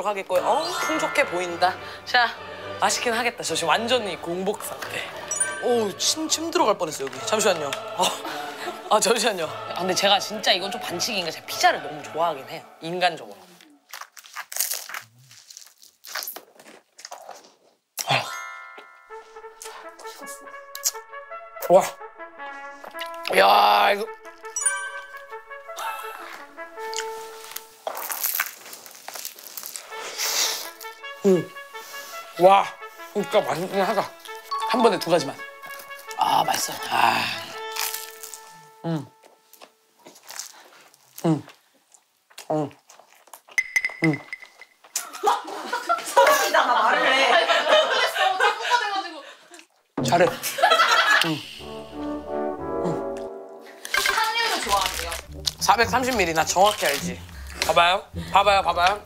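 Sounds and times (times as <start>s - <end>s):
music with held brass notes: 0.4s - 13.0s, 19.0s - 28.1s, 29.7s - 40.0s, 51.6s - 59.0s
crunching pizza bites: 13.8s - 17.8s, 27.8s - 30.0s, 37.6s - 38.5s, 40.0s - 43.6s, 54.6s - 57.8s.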